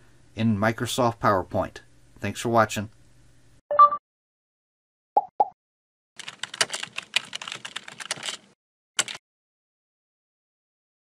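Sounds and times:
computer keyboard typing: 6.2 - 9.2.

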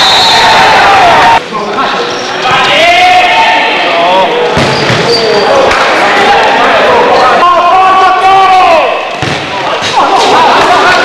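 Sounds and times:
players shouting: 2.4 - 11.0.

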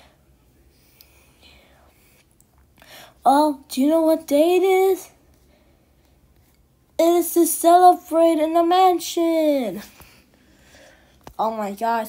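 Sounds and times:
faint breathy hiss: 0.0 - 3.3.

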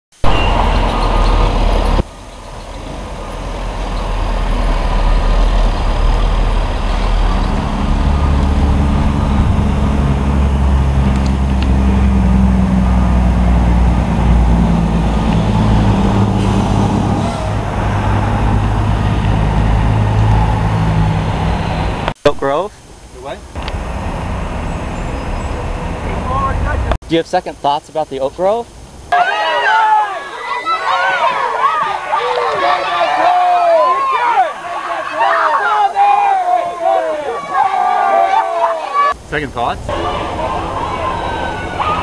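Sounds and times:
street traffic: 0.1 - 42.0
vehicle engine running: 0.2 - 22.1, 23.6 - 27.0, 39.2 - 42.0.

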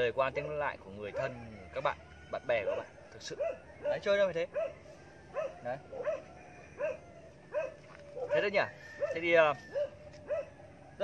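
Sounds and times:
dog barking: 1.0 - 1.5, 2.6 - 10.6.

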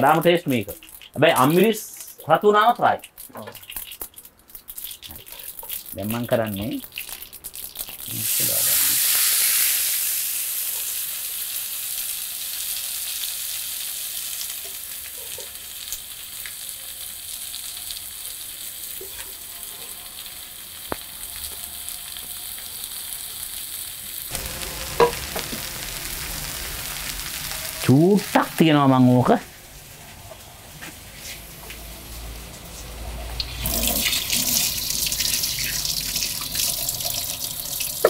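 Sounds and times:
leaves sizzling in hot oil: 0.0 - 38.0.

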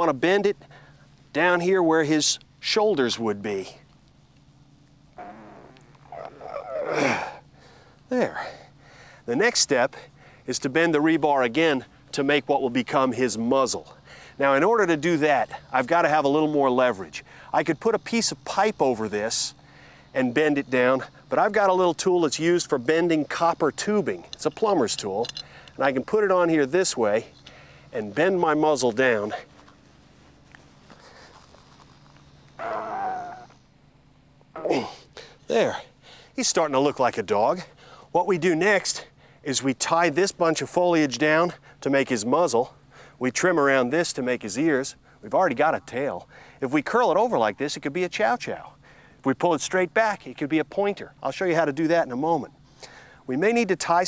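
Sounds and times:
man grunting and groaning: 5.2 - 7.4, 32.6 - 33.5, 34.6 - 36.0.

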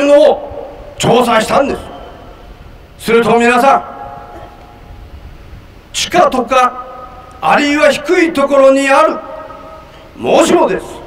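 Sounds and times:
man speaking through microphone: 0.0 - 2.1, 3.0 - 4.3, 5.9 - 11.0.

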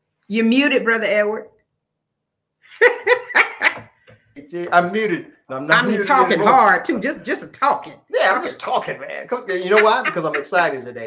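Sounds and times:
person laughing: 2.7 - 3.9, 9.6 - 10.6.

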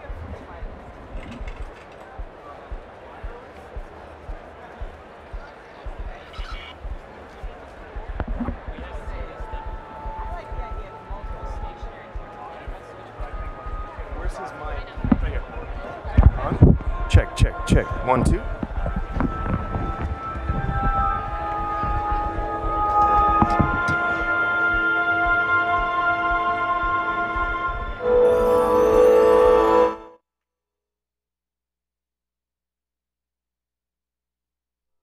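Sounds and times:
dull low thumps: 0.0 - 28.6
distant crowd chatter: 0.0 - 28.9
faint steady pair of tones: 0.0 - 30.0.

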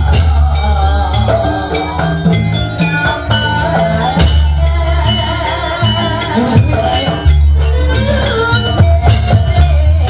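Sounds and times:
gamelan ensemble playing: 0.0 - 10.0.

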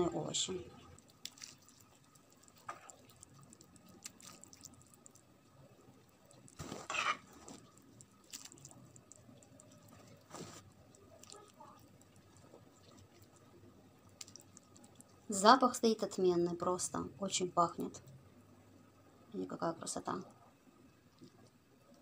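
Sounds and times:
wet plops and squelches: 0.9 - 5.2, 7.5 - 10.0, 14.1 - 15.1
liquid splash: 1.0 - 5.0, 8.2 - 9.1.

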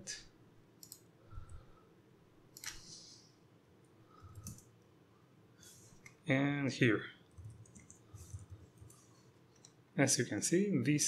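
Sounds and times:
faint mouse and keyboard clicks: 0.8 - 1.6, 2.5 - 3.0, 4.3 - 4.8, 7.3 - 9.9.

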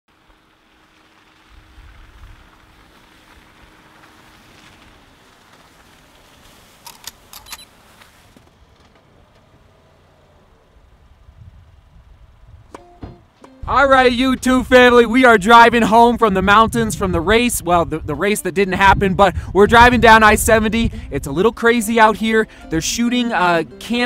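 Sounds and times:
wet tyre hiss: 0.1 - 8.4
car engine rumble: 0.1 - 24.0.

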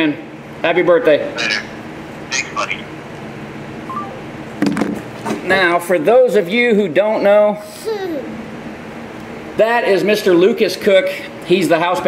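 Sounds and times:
low room hum: 0.0 - 12.0
short smartphone beeps: 3.9 - 4.2.

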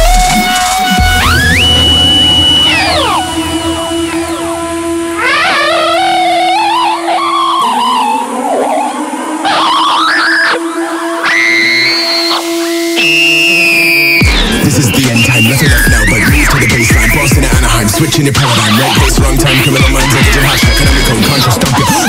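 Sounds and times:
distorted electric guitar lead: 0.0 - 22.0
low held backing note: 0.8 - 8.0.

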